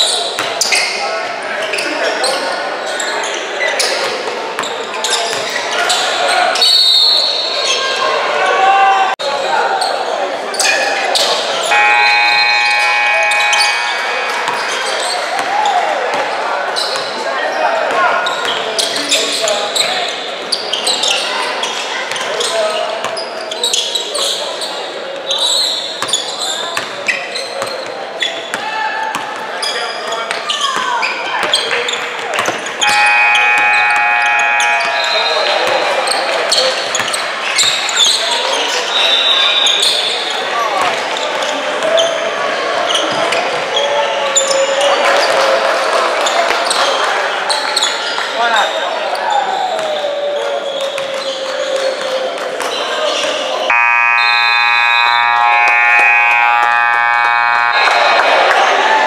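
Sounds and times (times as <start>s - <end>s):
sneakers squeaking: 10.5s - 15.5s, 18.2s - 38.8s
players calling out: 11.1s - 15.5s, 32.8s - 36.6s, 53.7s - 59.0s
scoreboard horn: 11.7s - 14.5s, 32.8s - 35.7s, 53.7s - 59.0s.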